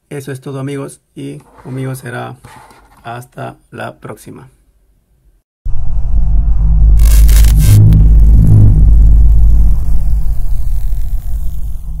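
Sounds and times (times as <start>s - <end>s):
deep rumbling swell: 5.7s - 12.0s.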